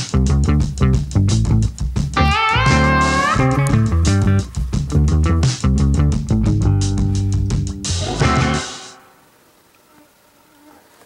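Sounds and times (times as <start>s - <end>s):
outdoor background noise: 1.4s - 11.0s
faint buzzing of flying insects: 7.9s - 11.0s.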